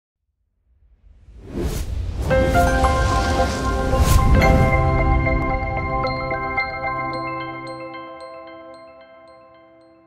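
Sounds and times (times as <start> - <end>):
whoosh sound effect: 1.4 - 5.6.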